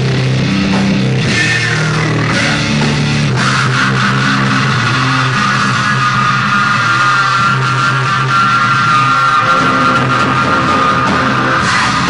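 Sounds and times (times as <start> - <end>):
distorted electric guitar chords: 0.0 - 12.0
rock band playing live: 0.0 - 12.0.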